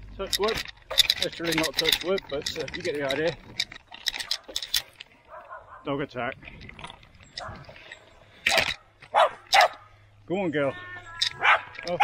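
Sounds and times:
small dog barking: 9.1 - 9.7, 11.4 - 11.7.

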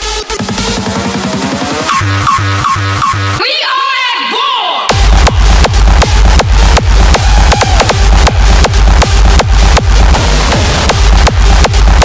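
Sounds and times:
distorted kick drum: 4.9 - 12.0.

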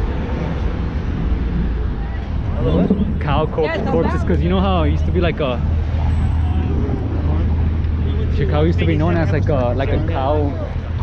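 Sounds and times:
cars driving past: 0.0 - 11.0
road noise: 0.0 - 11.0.

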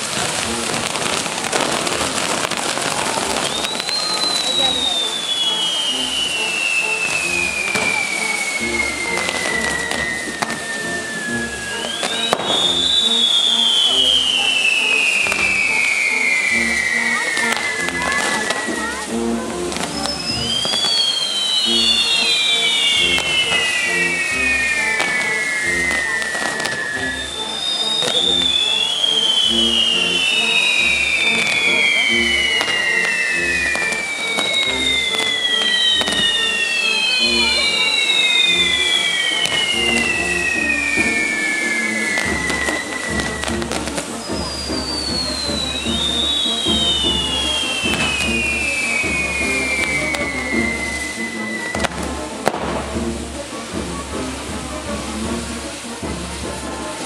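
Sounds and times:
fireworks crackling: 0.0 - 57.0
whistling fireworks falling in pitch: 0.0 - 57.0
music with steady beat: 4.2 - 57.0.

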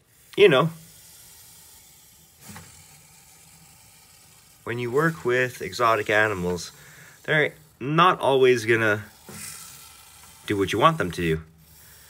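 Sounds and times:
snake hissing: 0.0 - 12.0.

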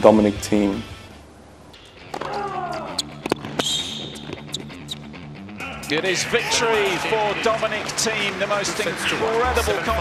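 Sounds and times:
falling voice-like cry: 2.2 - 3.1
background music with bass line: 4.4 - 6.0.

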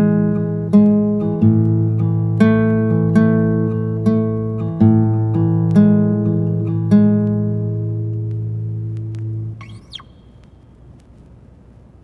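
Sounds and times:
acoustic guitar plucking: 0.0 - 10.4
faint hiss: 0.0 - 12.0
brief squeak: 9.6 - 10.5.

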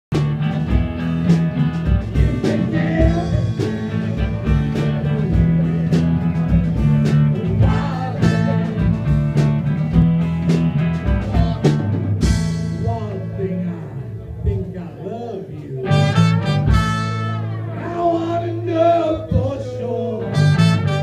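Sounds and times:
electric guitars: 0.1 - 14.3, 15.8 - 21.0
drum kit beats: 0.1 - 14.9, 15.8 - 21.0
bass line: 0.1 - 15.0, 15.8 - 21.0.

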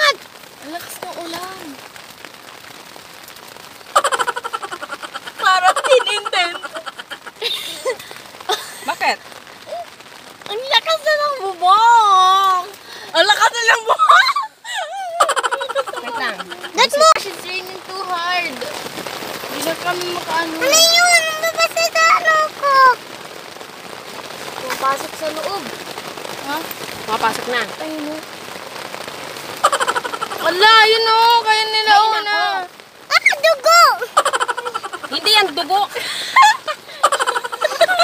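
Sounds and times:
faint steady hiss: 0.0 - 38.0
heavy rain on tent fabric: 0.0 - 38.0
girls laughing and squealing: 3.9 - 9.9, 13.2 - 17.4, 29.6 - 38.0.

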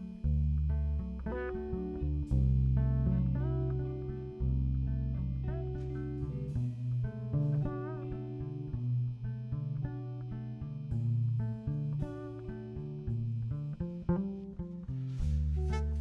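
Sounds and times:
plucked bass notes: 0.0 - 16.0.

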